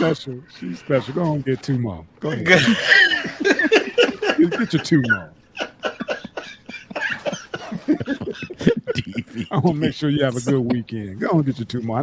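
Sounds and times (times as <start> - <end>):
men laughing: 2.4 - 11.0.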